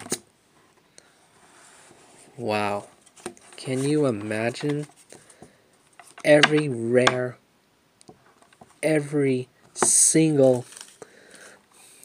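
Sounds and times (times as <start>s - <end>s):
cards handling: 9.8s - 11.4s.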